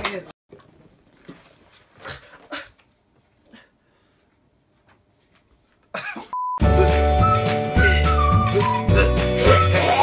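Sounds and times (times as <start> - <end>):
loud music with heavy bass: 6.6 - 10.0.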